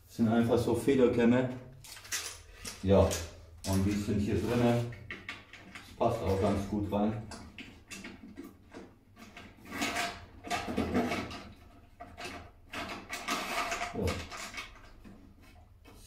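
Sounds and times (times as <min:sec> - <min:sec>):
scraping and clicking handling noises: 0:01.8 - 0:16.0.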